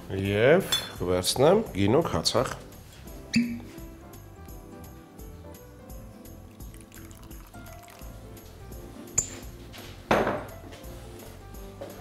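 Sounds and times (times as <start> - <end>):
background music: 0.0 - 12.0
oil poured and stirred in glass bowl: 6.4 - 9.5.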